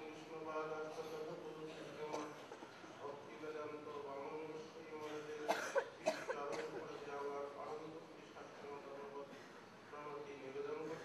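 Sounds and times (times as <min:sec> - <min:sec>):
talk in the room: 0:00.0 - 0:11.0
person coughing: 0:05.4 - 0:06.8.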